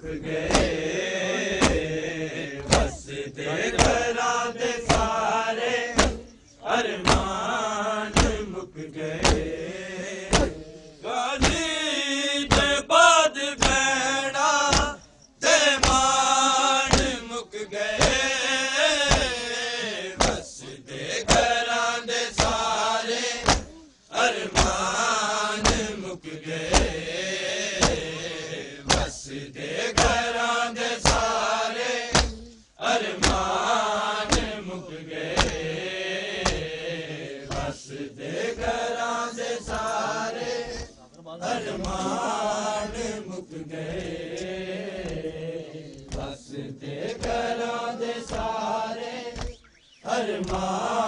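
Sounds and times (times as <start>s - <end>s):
men chanting in unison: 0.0s - 51.0s
chest-beating slaps: 0.4s - 0.9s, 1.5s - 4.2s, 4.8s - 5.2s, 5.9s - 6.4s, 7.0s - 7.4s, 8.1s - 8.5s, 9.2s - 9.6s, 10.3s - 10.7s, 11.4s - 11.7s, 12.5s - 12.8s, 13.6s - 13.9s, 14.6s - 15.0s, 15.8s - 16.2s, 16.9s - 17.3s, 18.0s - 18.3s, 19.0s - 19.4s, 20.2s - 20.5s, 21.2s - 21.6s, 22.3s - 22.6s, 23.4s - 23.8s, 24.5s - 24.9s, 25.6s - 26.0s, 26.6s - 29.2s, 29.9s - 30.2s, 31.0s - 31.4s, 32.1s - 32.6s, 33.2s - 33.5s, 34.2s - 34.6s, 35.3s - 35.8s, 36.4s - 36.8s, 37.5s - 37.8s, 41.6s - 43.2s, 43.8s - 46.4s, 49.3s - 50.7s.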